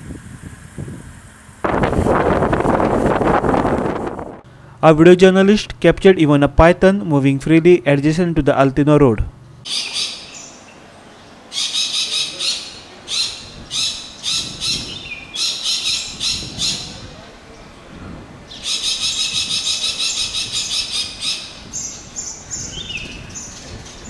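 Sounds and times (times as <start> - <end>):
harsh rasping bird calls: 9.6 - 17.1, 18.5 - 24.0.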